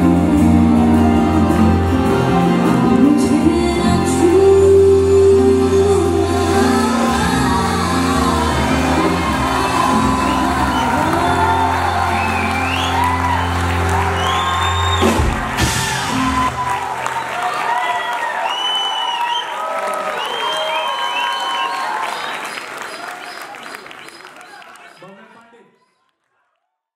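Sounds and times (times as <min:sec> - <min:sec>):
live band playing: 0:00.0 - 0:17.4
audience cheering and whooping: 0:06.3 - 0:25.0.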